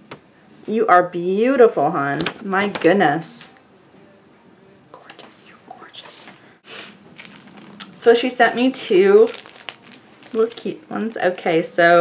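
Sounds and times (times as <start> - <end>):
woman whispering: 4.9 - 6.4.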